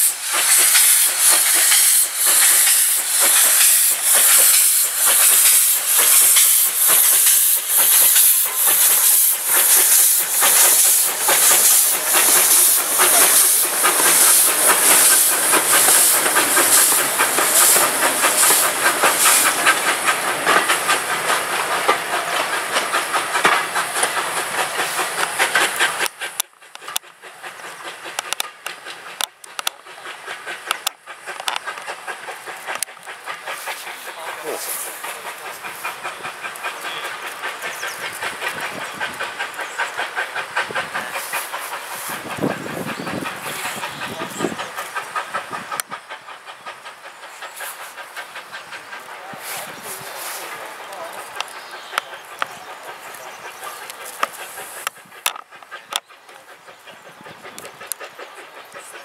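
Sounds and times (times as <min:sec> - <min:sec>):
hiss of steam: 0:00.0 - 0:59.0
rattle of train wheels: 0:00.0 - 0:59.0
steam locomotive exhaust beats: 0:00.0 - 0:59.0.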